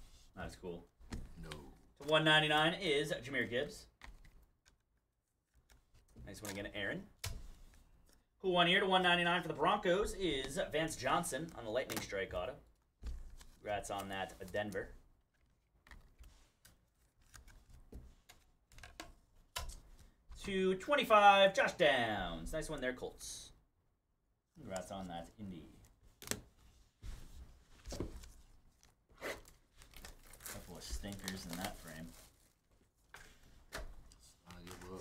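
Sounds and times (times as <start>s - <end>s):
trading cards rustling: 13.1s - 20.2s, 27.2s - 35.0s.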